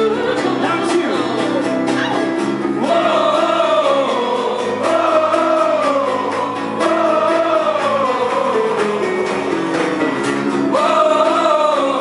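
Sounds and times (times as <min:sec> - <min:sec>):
acoustic guitar chords: 0:00.0 - 0:12.0
keyboard chords: 0:00.0 - 0:12.0.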